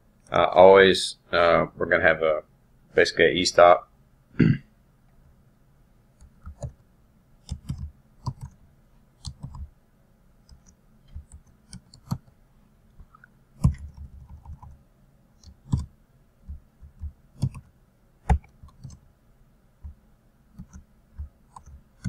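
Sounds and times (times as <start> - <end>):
computer keyboard typing: 6.2 - 6.8, 7.4 - 8.6, 9.2 - 9.7, 10.5 - 12.3, 13.6 - 14.8, 15.4 - 15.9, 16.5 - 17.7, 18.3 - 19.0, 20.6 - 22.0.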